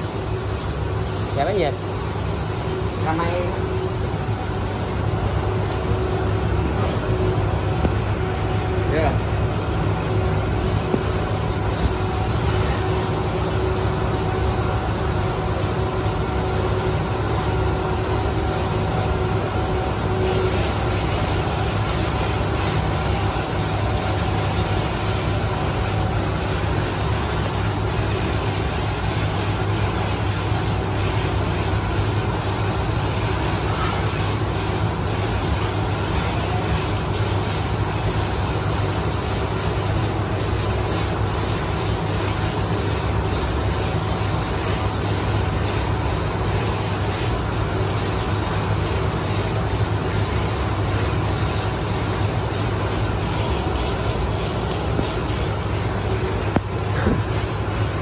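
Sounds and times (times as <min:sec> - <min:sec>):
spray gun hissing: 0:00.0 - 0:03.8, 0:09.2 - 0:53.2
spray booth fans humming: 0:00.0 - 0:58.0.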